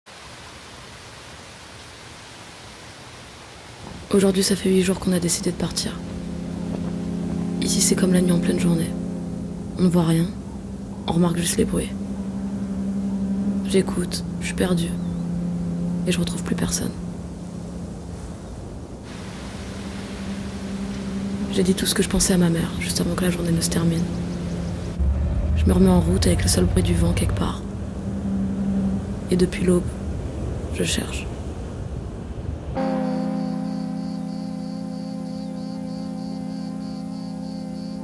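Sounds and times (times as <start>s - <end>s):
steady wind hiss: 0.1s - 38.0s
low rumble: 3.9s - 32.7s
low ambient drone: 3.9s - 38.0s.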